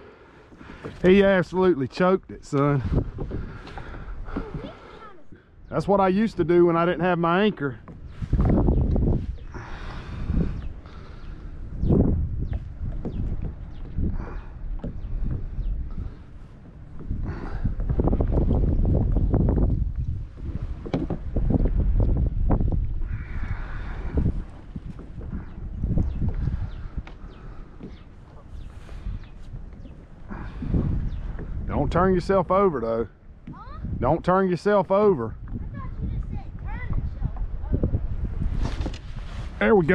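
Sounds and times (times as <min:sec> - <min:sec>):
water lapping against hull: 0:00.0 - 0:39.9
wind buffeting microphone: 0:00.6 - 0:39.9.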